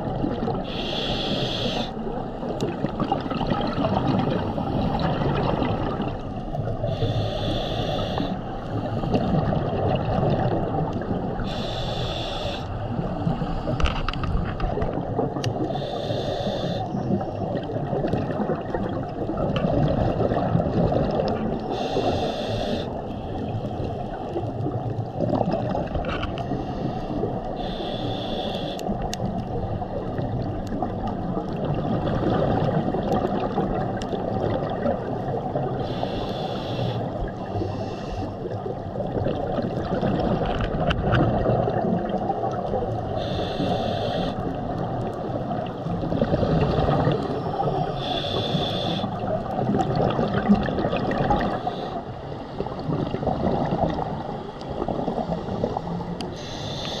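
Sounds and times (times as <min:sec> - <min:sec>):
underwater bubbling gurgle: 0:00.0 - 0:57.0
regulator hiss: 0:00.7 - 0:01.9, 0:06.9 - 0:08.4, 0:11.4 - 0:12.7, 0:15.7 - 0:16.9, 0:21.7 - 0:22.9, 0:27.6 - 0:28.8, 0:35.8 - 0:37.0, 0:43.2 - 0:44.4, 0:48.0 - 0:49.2, 0:56.3 - 0:57.0.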